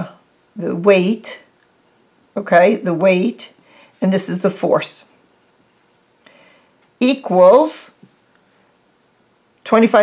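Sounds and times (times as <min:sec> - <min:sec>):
pencil scratching on paper: 0:05.3 - 0:06.2.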